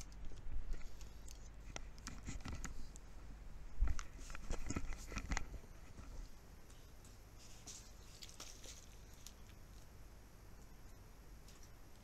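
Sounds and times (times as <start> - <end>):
small objects clicking and rustling: 7.7 - 9.9.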